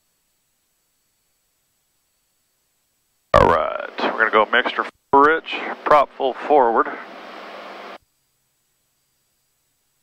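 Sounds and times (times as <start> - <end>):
person talking: 3.4 - 6.5.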